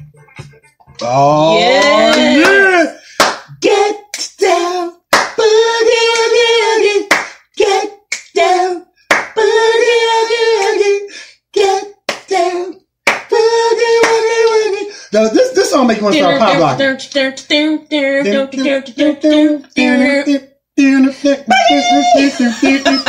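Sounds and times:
sharp clap-like hits: 2.1 - 4.4, 5.1 - 5.4, 7.1 - 7.5, 8.1 - 8.5, 9.1 - 9.4, 12.1 - 12.4, 13.0 - 13.4, 14.0 - 14.6.

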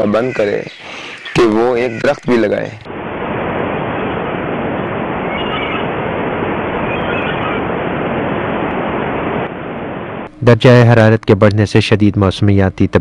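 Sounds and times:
sea surf on beach: 2.4 - 10.3
faint high cries: 5.2 - 6.0, 6.8 - 7.8.

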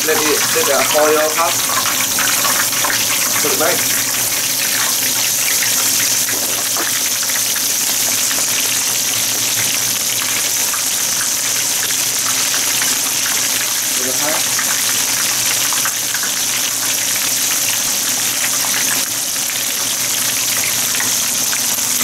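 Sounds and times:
fish deep-frying in oil: 0.0 - 22.0.

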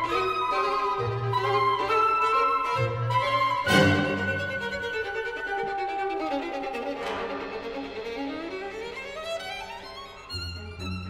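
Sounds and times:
violin and orchestra playing: 0.0 - 11.0.

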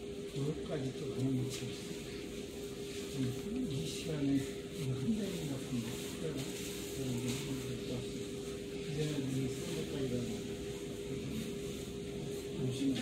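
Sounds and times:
steady hum: 0.0 - 13.0
indistinct talk of people: 0.3 - 13.0.

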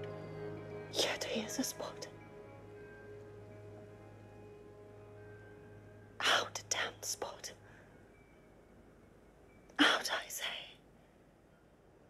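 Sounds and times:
faint held music tones: 0.0 - 12.0
woman whispering: 1.0 - 2.1, 6.2 - 7.6, 9.8 - 10.8.

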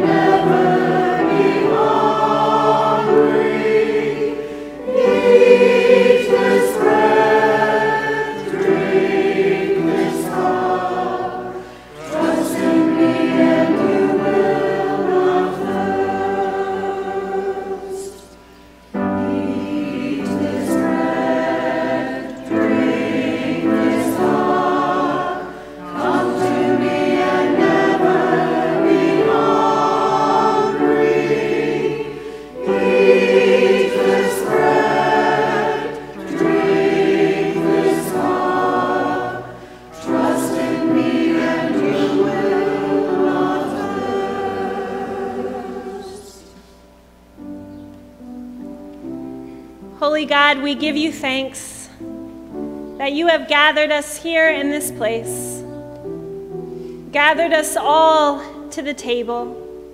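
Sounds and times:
choir and congregation singing hymn: 0.0 - 46.9.

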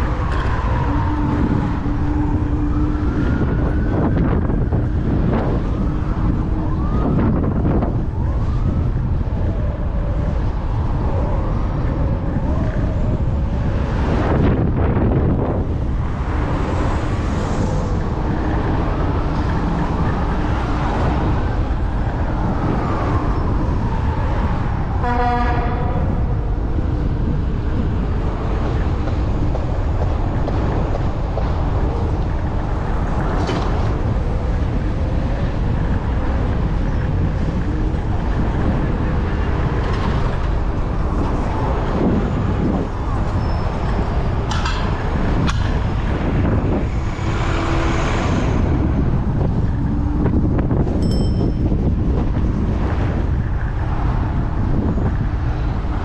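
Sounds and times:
city street traffic: 0.0 - 56.0
wind rumble: 0.0 - 56.0
car horn honk: 25.0 - 25.9.

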